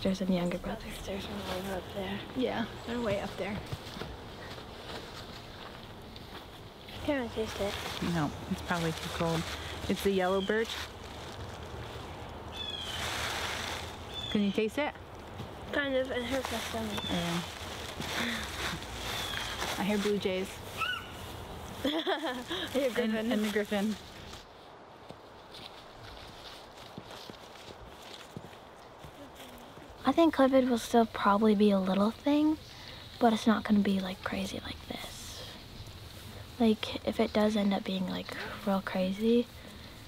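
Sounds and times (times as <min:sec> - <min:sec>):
faint outdoor air hiss: 0:00.0 - 0:40.0
footsteps crunching leaf litter: 0:00.8 - 0:30.0
blue jay calling: 0:09.4 - 0:10.8, 0:12.4 - 0:13.2, 0:14.0 - 0:14.8, 0:16.7 - 0:17.6, 0:19.0 - 0:21.7.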